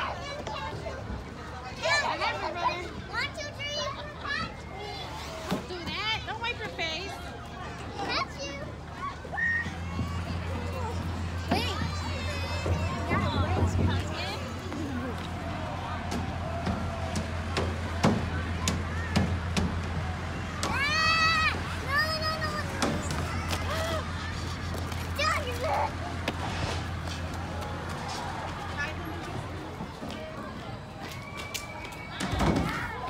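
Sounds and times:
children calling out and shouting: 0:00.0 - 0:05.6, 0:07.3 - 0:17.5, 0:18.4 - 0:26.2.

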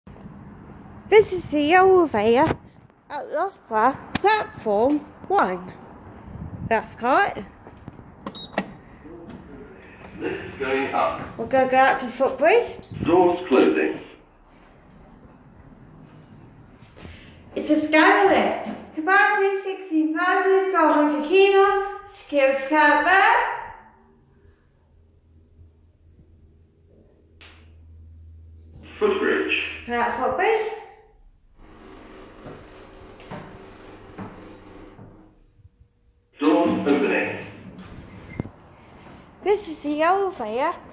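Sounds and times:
low hum: 0:31.0 - 0:39.4.

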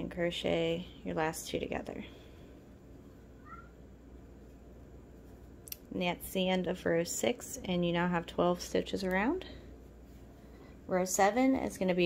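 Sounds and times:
low room hum: 0:00.0 - 0:12.0
cat meowing faintly: 0:03.4 - 0:03.8.

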